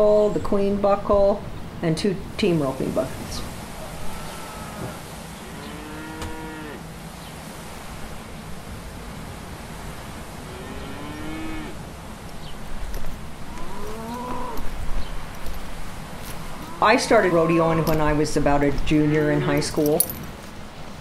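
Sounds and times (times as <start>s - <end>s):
cattle mooing: 3.8s - 6.8s, 10.4s - 11.8s, 13.4s - 14.8s, 16.3s - 18.0s.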